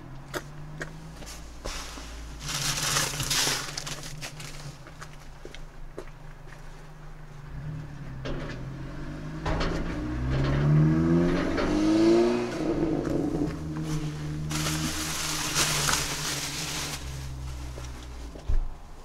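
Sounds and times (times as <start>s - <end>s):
engine humming: 0.0s - 19.0s
engine accelerating: 7.4s - 18.3s.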